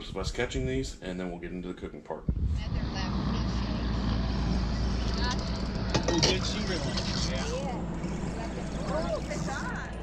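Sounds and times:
wind: 0.0s - 10.0s
water noise: 2.5s - 10.0s
outboard motor idling: 2.8s - 10.0s.

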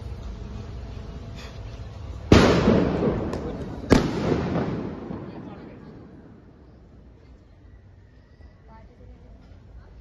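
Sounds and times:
firecracker bangs: 2.3s - 6.8s.

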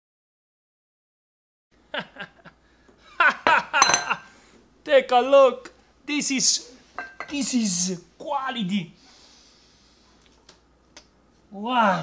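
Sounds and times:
man laughing: 1.9s - 4.2s
light high clink: 3.8s - 4.1s.

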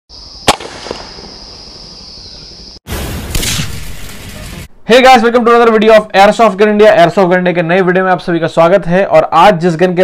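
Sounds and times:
air pistol shot pop: 0.5s - 1.4s.

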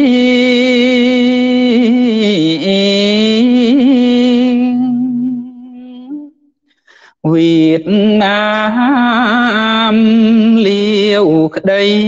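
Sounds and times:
man chanting: 0.0s - 6.4s, 7.1s - 12.0s.

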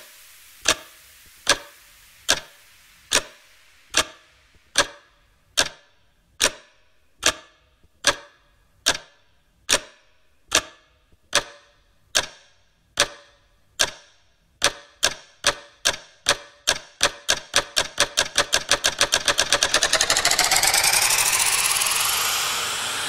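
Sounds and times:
faint hiss: 0.0s - 6.4s
sharp electronic percussive hit: 18.8s - 23.0s.

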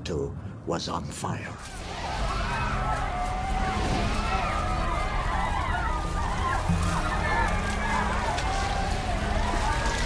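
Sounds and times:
people crying out: 1.8s - 10.0s.

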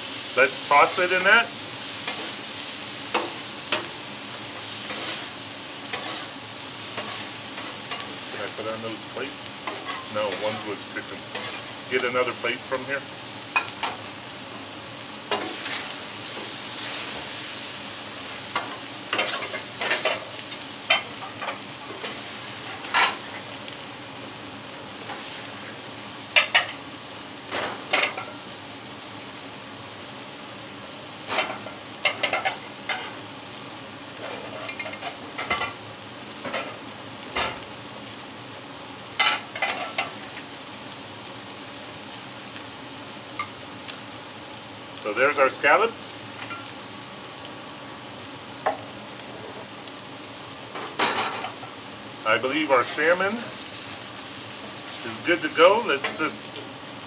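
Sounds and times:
food sizzling on a griddle: 0.0s - 57.0s.

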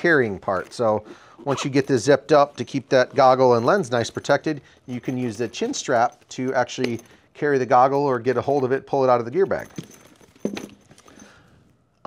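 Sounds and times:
soft handling sounds: 0.0s - 12.0s
case knocking on table: 10.4s - 10.8s.

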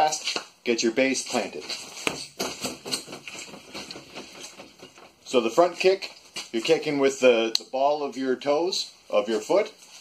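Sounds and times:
sharp knocks and thuds: 1.8s - 5.3s.

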